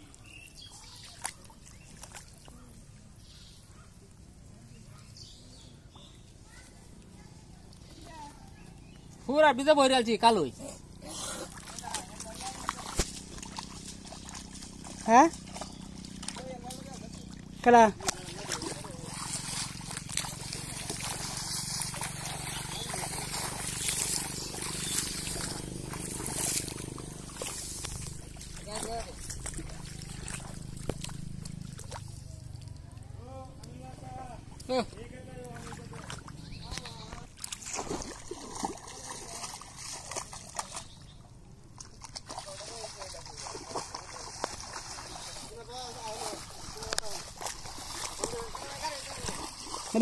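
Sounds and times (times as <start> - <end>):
shallow water sloshing and splashing: 0.0 - 2.8, 11.3 - 33.0, 35.4 - 50.0.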